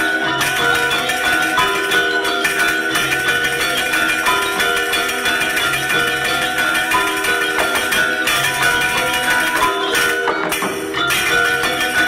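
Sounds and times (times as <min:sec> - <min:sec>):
gamelan metallophones ringing: 0:00.0 - 0:12.0.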